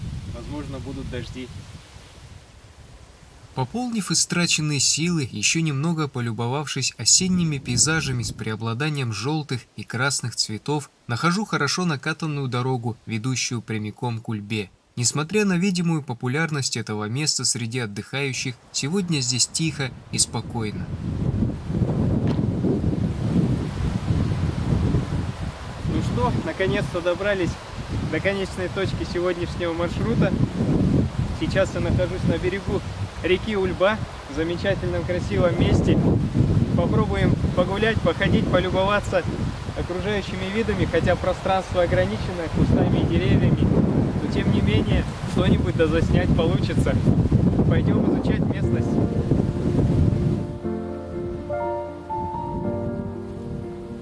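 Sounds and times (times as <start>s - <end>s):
wind buffeting microphone: 0.0s - 3.6s, 19.6s - 51.5s
soft background music: 48.5s - 54.0s.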